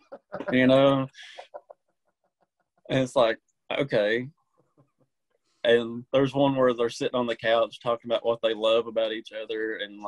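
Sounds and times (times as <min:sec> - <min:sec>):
man speaking: 0:00.4 - 0:01.6, 0:02.9 - 0:04.4, 0:05.6 - 0:10.0.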